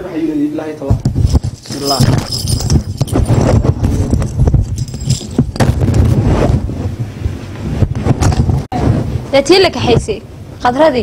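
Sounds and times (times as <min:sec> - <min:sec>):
low wind rumble on microphone: 0:01.0 - 0:11.0
rustling and handling noises: 0:01.1 - 0:06.6.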